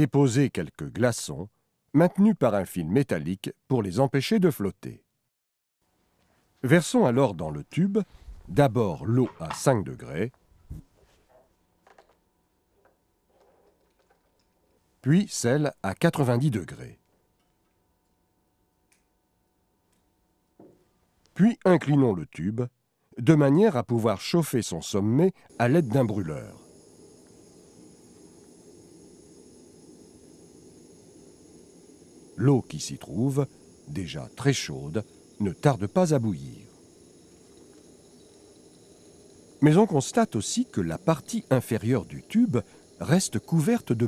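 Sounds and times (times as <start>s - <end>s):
gas burner flame rushing: 25.5s - 44.0s.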